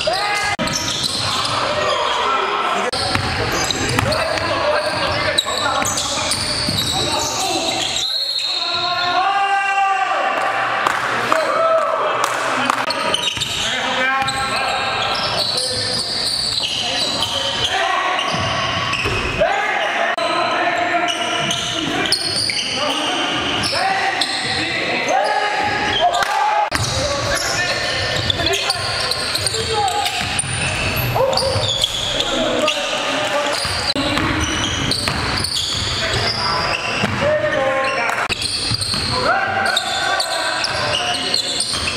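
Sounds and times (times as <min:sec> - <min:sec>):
players calling out: 0:00.0 - 0:41.9
basketballs bouncing on wooden floor: 0:03.0 - 0:07.1, 0:33.6 - 0:36.3, 0:38.3 - 0:39.2.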